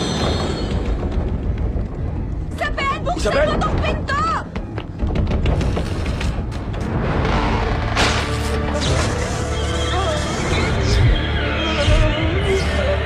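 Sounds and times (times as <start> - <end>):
dramatic background music: 0.0 - 13.0
knocks: 3.6 - 6.9.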